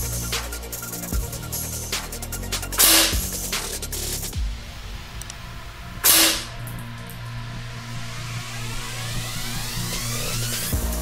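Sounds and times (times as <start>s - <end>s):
air rifle shot: 2.8s - 3.2s, 6.0s - 6.5s.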